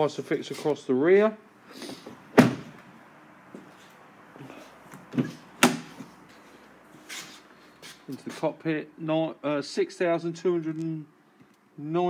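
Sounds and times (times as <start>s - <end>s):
car doors shutting: 1.9s - 2.8s.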